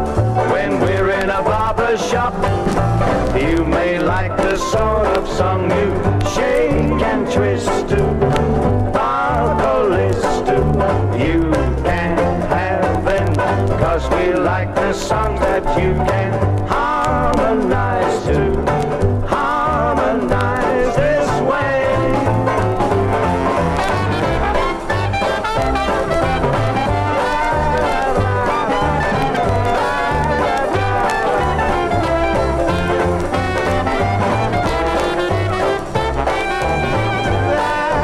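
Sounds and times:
steady bass beat: 0.0s - 38.0s
swing jazz band with brass: 0.0s - 38.0s.

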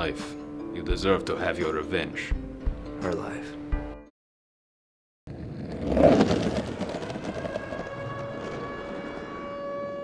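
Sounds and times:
rumbling drone: 5.3s - 10.0s.

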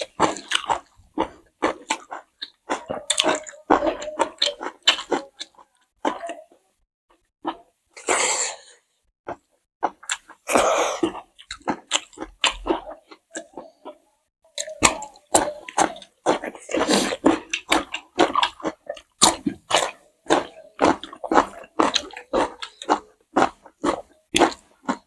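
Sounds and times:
people chewing food: 0.0s - 25.0s.

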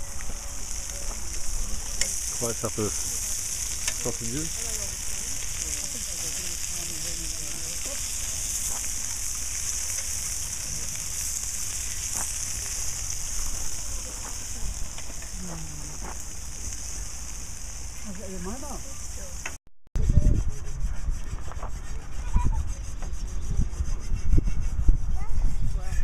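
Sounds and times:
sausages sizzling on hotplate: 0.0s - 19.6s.

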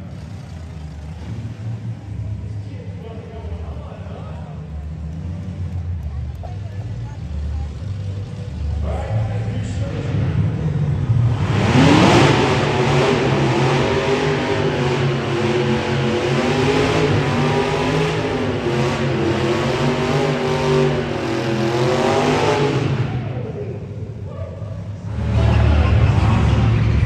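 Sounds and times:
tires spinning: 0.0s - 27.0s
car engine revving hard: 10.0s - 23.5s, 25.0s - 27.0s.

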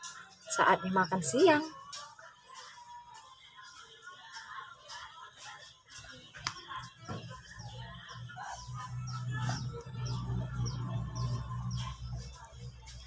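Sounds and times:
small bird chirping: 7.4s - 13.0s.

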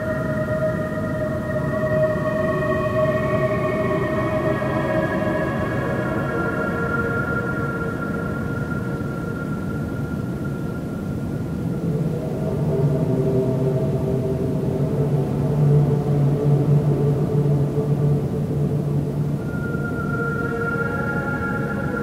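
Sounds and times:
dark ambient drone music: 0.0s - 22.0s.

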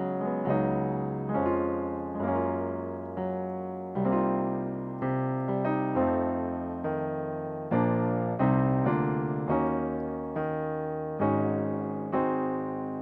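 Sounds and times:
piano jazz chords: 0.0s - 13.0s.

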